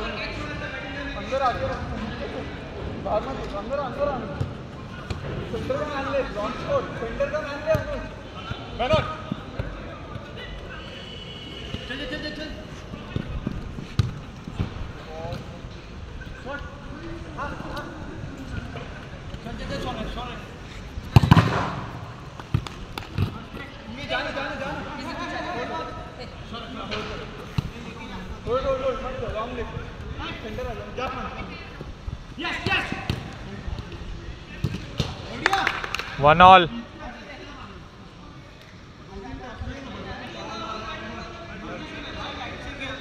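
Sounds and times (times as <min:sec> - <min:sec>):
ball being kicked: 0:21.1 - 0:23.5.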